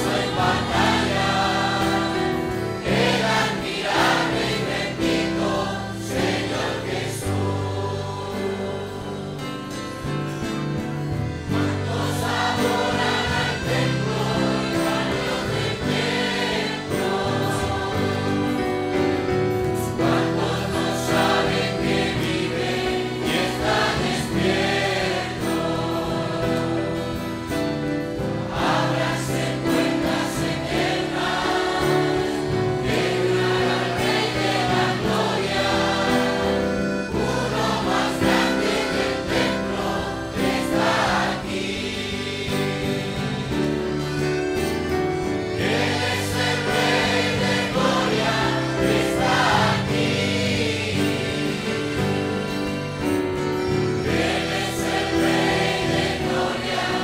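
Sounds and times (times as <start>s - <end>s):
congregation singing a hymn: 0.0s - 57.0s.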